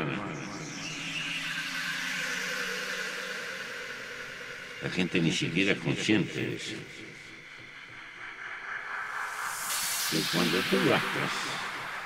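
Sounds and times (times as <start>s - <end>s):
hiss-like electronic drone: 0.0s - 4.8s, 7.6s - 12.0s.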